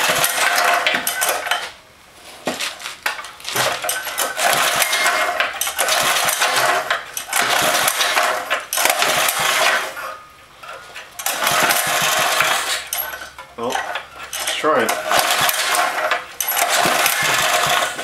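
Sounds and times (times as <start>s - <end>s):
engine recoil starter pulls: 0.0s - 1.8s, 3.2s - 18.0s.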